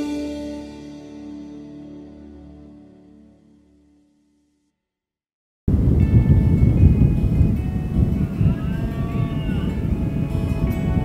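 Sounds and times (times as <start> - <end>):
soft background music: 0.0 - 4.0, 5.7 - 11.0.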